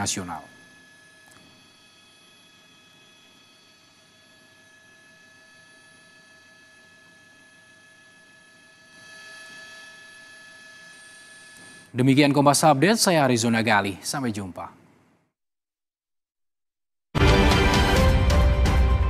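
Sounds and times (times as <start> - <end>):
faint steady electronic tones: 0.0 - 15.4.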